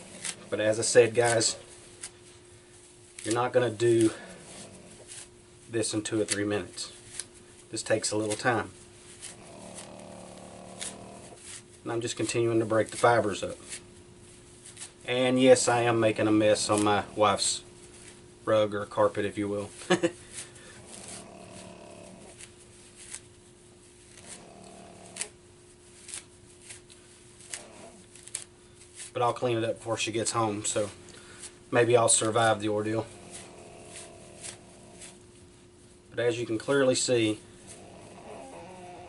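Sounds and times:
bark fibers rustling and tearing: 0.0s - 39.0s
faint steady hum: 0.0s - 39.0s
fibres crackling as they tear: 26.0s - 29.2s.

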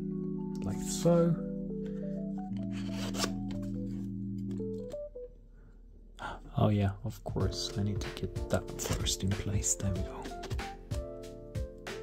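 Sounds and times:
held low chord music: 0.0s - 5.5s, 6.1s - 12.0s.

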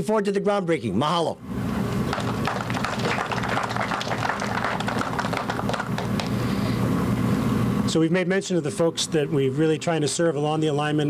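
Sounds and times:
crowd applauding: 2.0s - 6.5s.

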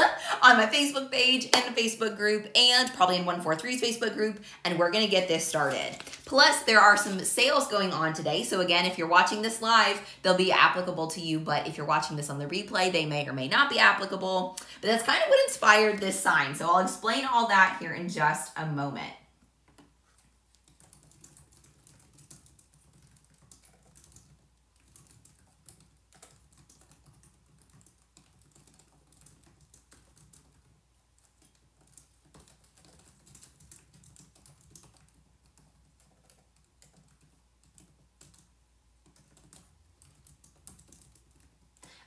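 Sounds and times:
laptop keyboard typing: 0.0s - 10.8s, 19.4s - 42.0s.

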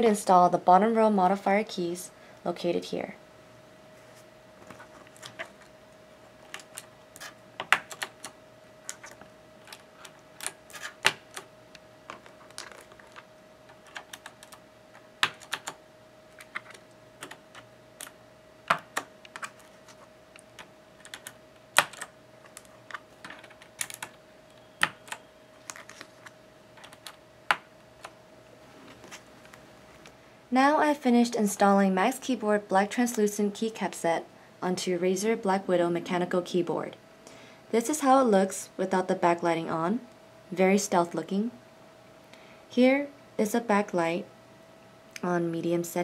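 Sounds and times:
faint steady hum: 0.0s - 46.0s
keycaps clicking onto keyboard: 7.6s - 11.5s, 15.2s - 15.8s, 20.4s - 24.2s.

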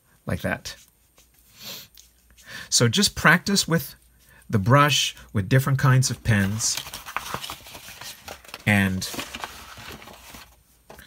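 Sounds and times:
paper rustling: 5.9s - 11.0s.

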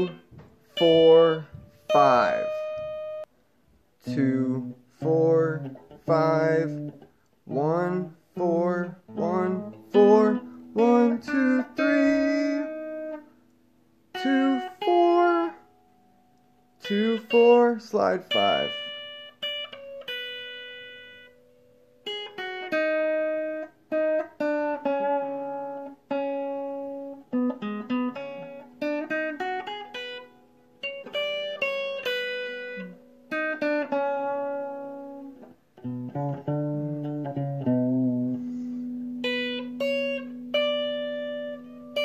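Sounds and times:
clean electric guitar blues notes: 0.0s - 3.3s, 4.0s - 42.0s.

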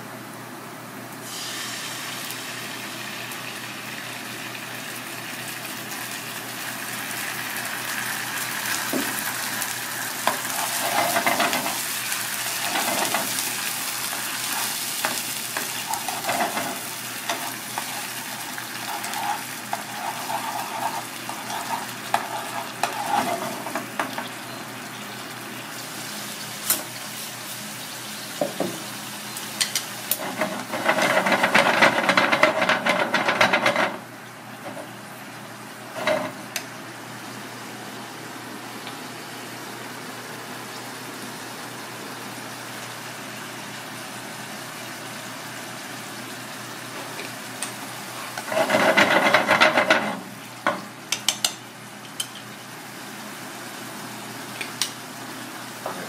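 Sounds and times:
sauce sizzling in oil: 1.1s - 55.9s
spoon scraping frying pan: 10.2s - 11.8s, 12.5s - 24.3s, 29.6s - 34.0s, 48.2s - 50.2s.

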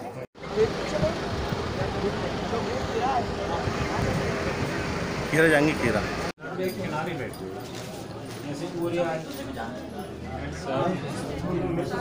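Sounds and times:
crowd voices overlapping: 0.0s - 12.0s
vehicle engine hum: 0.1s - 6.4s.

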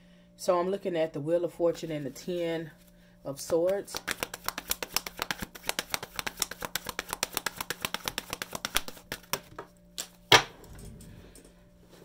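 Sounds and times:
cards being shuffled: 3.4s - 10.2s.

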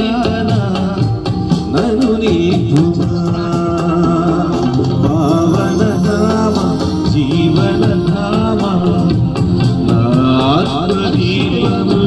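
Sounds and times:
electronic drum beat: 0.0s - 12.0s
keyboards: 0.0s - 12.0s
man singing: 0.0s - 12.0s.

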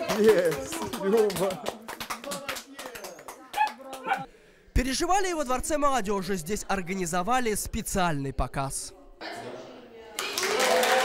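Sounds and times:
people clapping: 0.0s - 4.3s, 10.1s - 11.0s.

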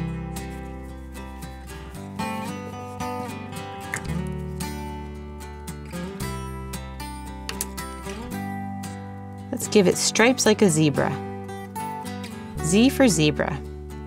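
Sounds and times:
strummed acoustic guitar: 0.0s - 12.9s.

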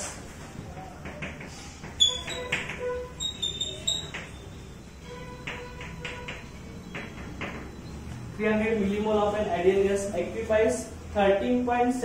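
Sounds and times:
chalk tapping and scraping on blackboard: 0.0s - 4.5s, 5.1s - 7.7s
chalk squeaks: 1.4s - 7.3s.

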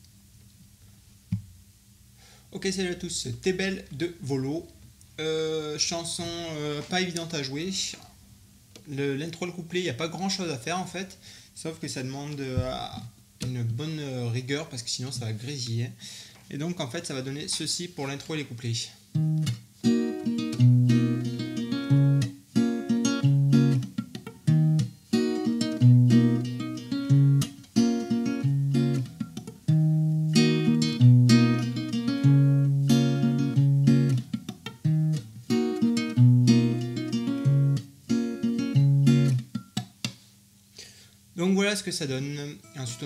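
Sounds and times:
fingerstyle acoustic guitar: 19.1s - 40.1s.

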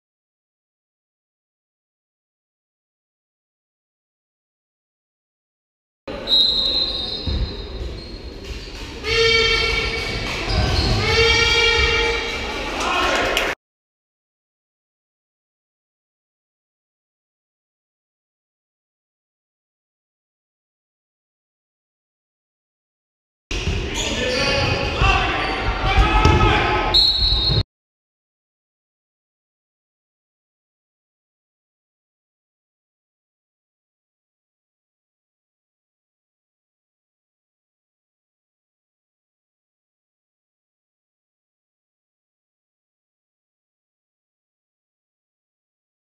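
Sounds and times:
high whistle tone: 6.2s - 7.8s, 26.9s - 27.6s
players shouting: 9.0s - 13.6s, 24.0s - 27.0s
ball and court thumps: 25.9s - 26.6s.

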